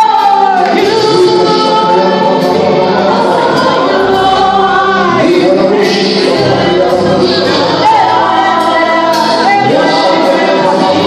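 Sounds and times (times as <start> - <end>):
group of voices singing: 0.0 - 11.0
lead singer on microphone: 0.0 - 11.0.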